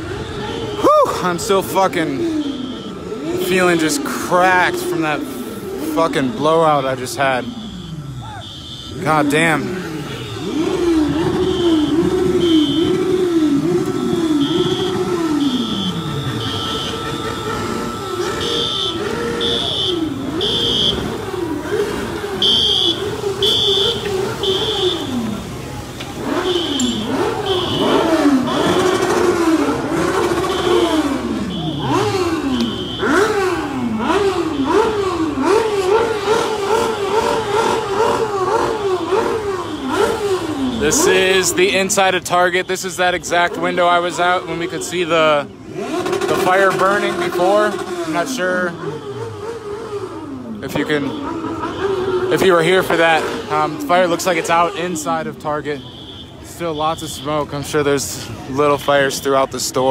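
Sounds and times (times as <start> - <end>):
electronic alarm siren: 7.3 - 25.2, 26.3 - 41.0.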